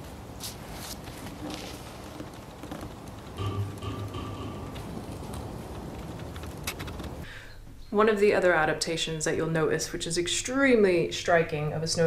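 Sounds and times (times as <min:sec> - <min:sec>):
low steady hum: 0:00.0 - 0:10.6.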